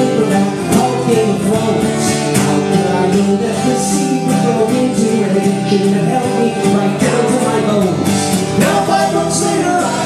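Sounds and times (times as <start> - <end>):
acoustic guitar strumming: 0.0 - 10.0
person singing: 0.0 - 10.0.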